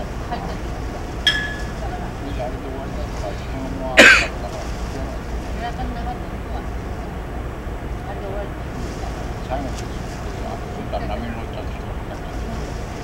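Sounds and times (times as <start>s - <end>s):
faint voices talking: 0.0s - 13.0s
person clearing throat: 4.0s - 4.4s.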